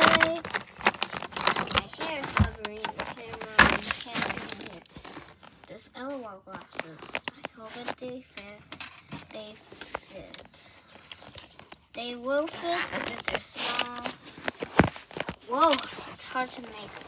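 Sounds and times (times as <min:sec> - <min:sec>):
toys being rummaged: 0:00.0 - 0:17.0.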